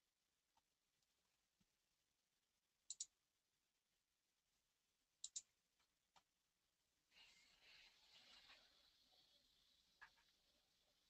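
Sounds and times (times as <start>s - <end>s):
faint computer mouse clicks: 2.9s - 3.1s, 5.2s - 5.5s.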